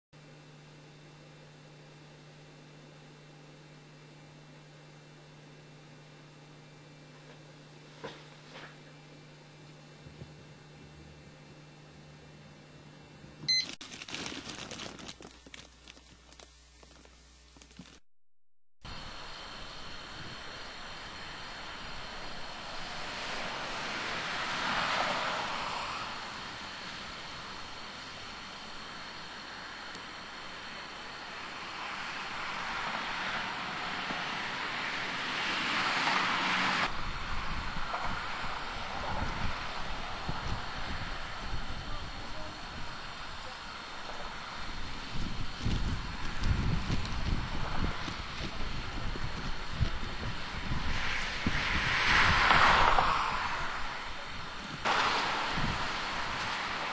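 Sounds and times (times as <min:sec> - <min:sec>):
highway traffic: 0:20.8 - 0:41.7, 0:47.2 - 0:56.9
vehicle approaching: 0:21.6 - 0:28.6
wind on microphone: 0:36.9 - 0:43.6, 0:44.2 - 0:56.9.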